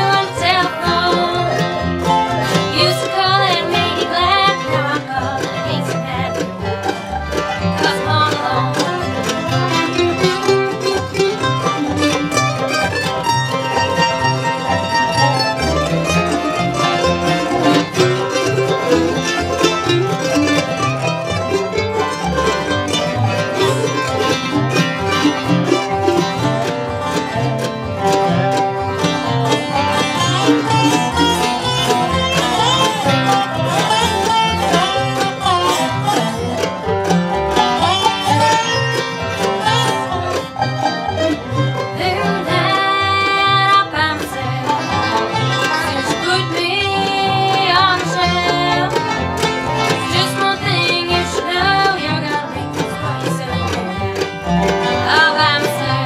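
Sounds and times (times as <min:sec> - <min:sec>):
mandolin picked rapidly: 0:00.0 - 0:56.0
plucked upright bass: 0:00.0 - 0:56.0
resonator guitar with steel bar: 0:00.0 - 0:56.0.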